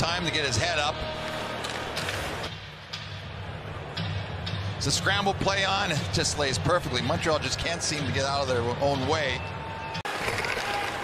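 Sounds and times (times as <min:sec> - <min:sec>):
crowd noise: 0:07.5 - 0:11.0.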